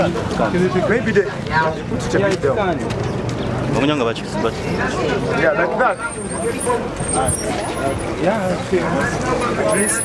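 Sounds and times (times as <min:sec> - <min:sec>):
people talking: 0:03.7 - 0:10.0.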